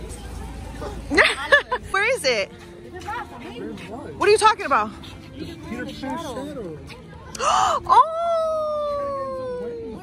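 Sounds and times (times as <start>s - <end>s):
person mock howling: 7.9s - 10.0s.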